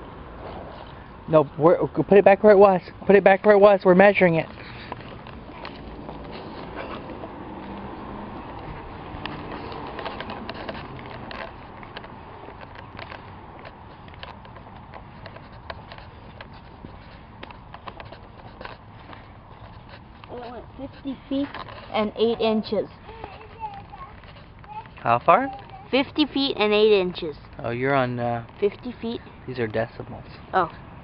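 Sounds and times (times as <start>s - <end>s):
outdoor background noise: 0.0s - 31.0s
footsteps on asphalt: 2.8s - 31.0s.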